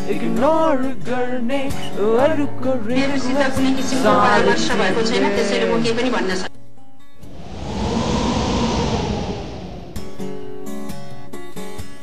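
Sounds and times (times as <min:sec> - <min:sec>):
dense rushing noise: 0:07.2 - 0:10.4.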